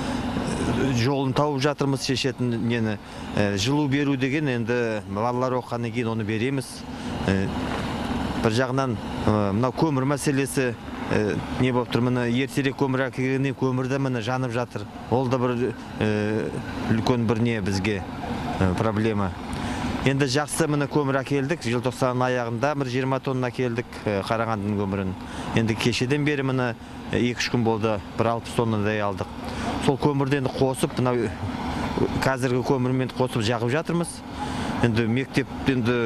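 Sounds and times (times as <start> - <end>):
man speaking: 0.0 - 7.7, 8.4 - 36.0
steady outdoor noise: 0.0 - 36.0.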